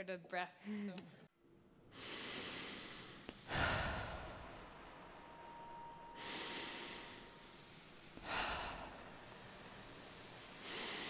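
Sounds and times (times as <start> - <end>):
person breathing: 1.9 - 4.6, 6.1 - 7.5, 8.1 - 9.7, 10.5 - 11.0
faint thin steady tone: 4.0 - 8.1.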